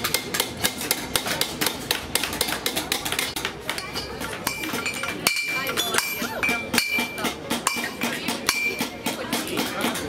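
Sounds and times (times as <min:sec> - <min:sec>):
crowd chatter: 0:00.0 - 0:10.0
hammer striking metal: 0:00.0 - 0:10.0.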